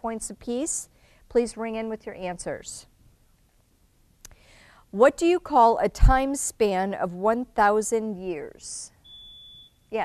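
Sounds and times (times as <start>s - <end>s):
soft intake of breath: 4.3s - 4.9s.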